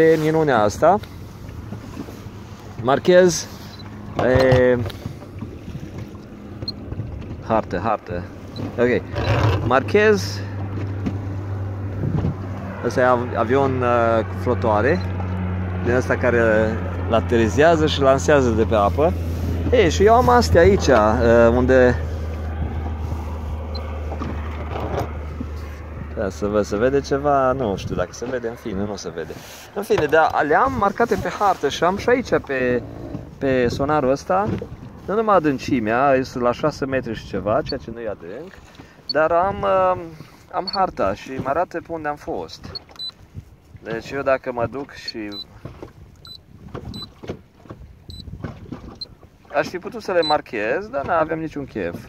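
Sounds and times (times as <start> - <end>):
low background rumble: 0.0 - 38.0
wind and water noise: 0.0 - 52.0.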